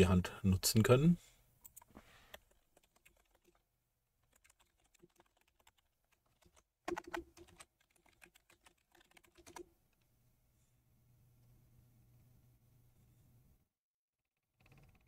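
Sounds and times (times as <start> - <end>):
typing on computer keyboard: 1.6 - 3.6, 4.2 - 9.7.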